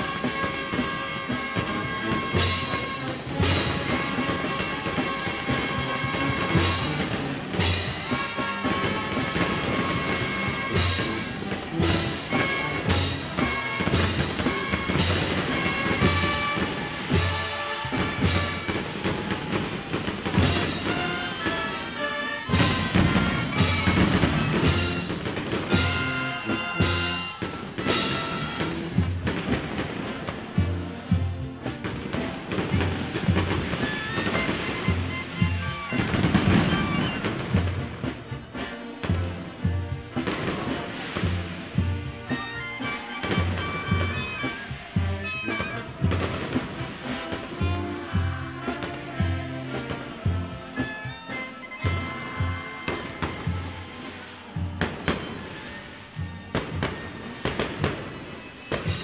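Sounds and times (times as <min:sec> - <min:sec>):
wind instruments holding notes: 0:00.0 - 0:59.0
bass drum beat: 0:43.2 - 0:50.8.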